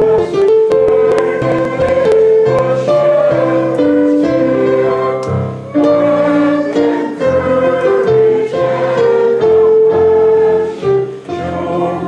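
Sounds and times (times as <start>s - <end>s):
digital piano chords: 0.0s - 12.0s
group singing a hymn: 0.0s - 12.0s.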